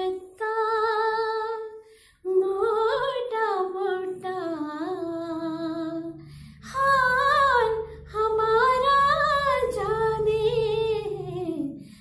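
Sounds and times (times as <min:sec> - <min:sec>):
woman singing long note with vibrato: 0:00.0 - 0:12.0.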